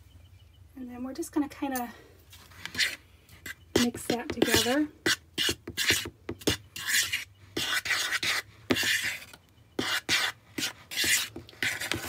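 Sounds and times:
fork scraping flour in bowl: 0:02.6 - 0:12.0.

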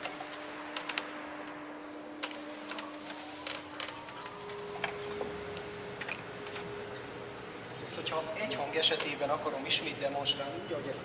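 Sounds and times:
pipe organ note: 0:00.0 - 0:10.9.

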